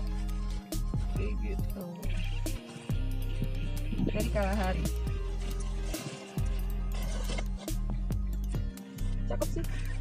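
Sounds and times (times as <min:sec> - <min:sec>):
low bass notes: 0:00.0 - 0:10.0.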